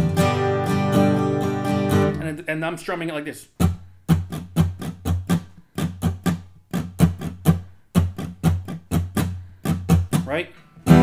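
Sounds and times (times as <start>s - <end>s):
acoustic guitar strumming: 0.0s - 2.4s, 3.6s - 11.0s.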